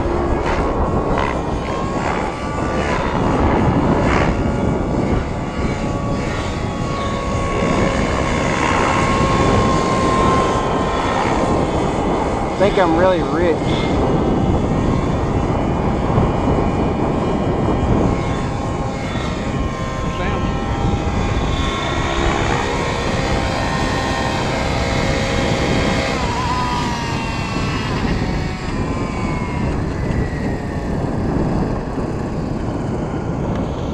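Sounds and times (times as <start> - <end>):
model helicopter engine whine: 0.0 - 33.9.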